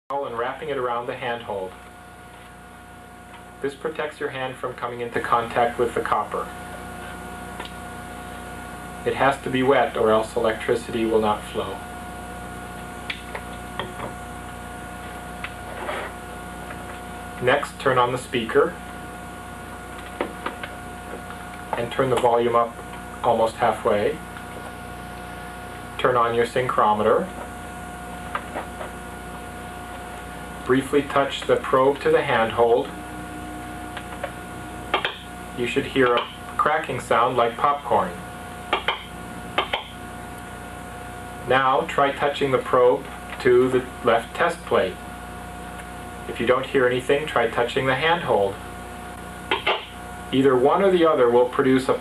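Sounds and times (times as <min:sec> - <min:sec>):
electrical hum with high tone: 0:00.1 - 0:52.0
speaker popping and crackling: 0:19.8 - 0:23.2, 0:27.3 - 0:36.7.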